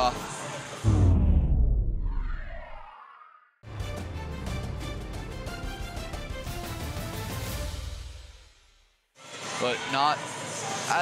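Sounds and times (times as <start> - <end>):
deep boom: 0.8 - 2.9
whoosh: 0.8 - 3.3.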